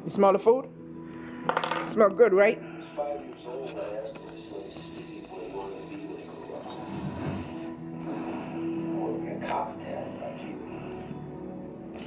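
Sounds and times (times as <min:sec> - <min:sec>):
television music and speech: 0:00.0 - 0:12.0.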